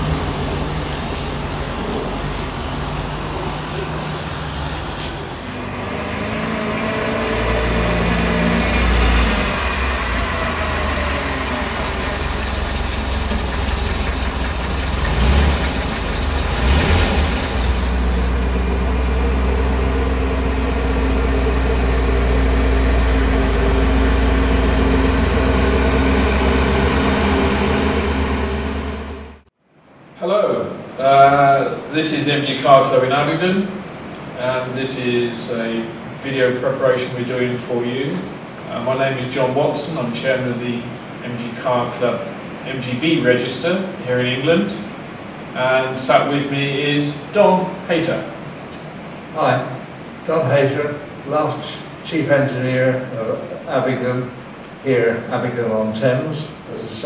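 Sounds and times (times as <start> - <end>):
sports car engine running: 0.0 - 29.5.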